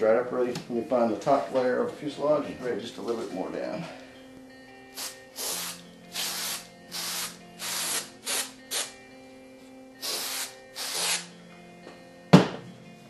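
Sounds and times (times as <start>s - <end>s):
aerosol can hissing in bursts: 4.9s - 9.0s, 10.0s - 11.3s.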